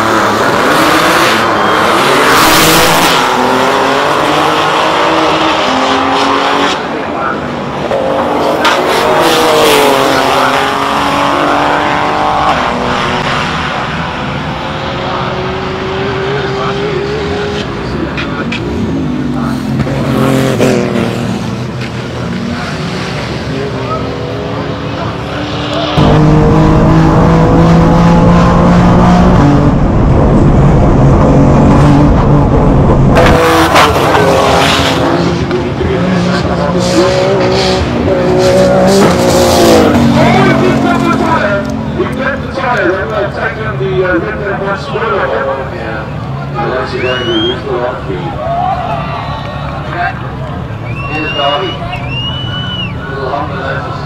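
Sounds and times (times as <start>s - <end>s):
race car engine at full throttle: 0.0s - 54.0s.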